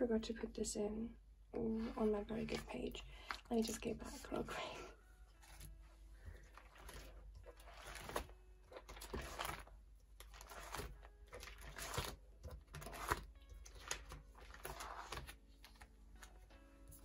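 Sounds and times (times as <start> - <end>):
plastic binder pages turning: 6.4 - 16.4.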